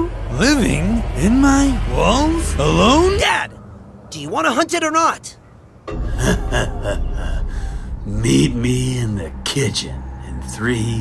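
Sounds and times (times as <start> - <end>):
man gasping: 7.0 - 8.0.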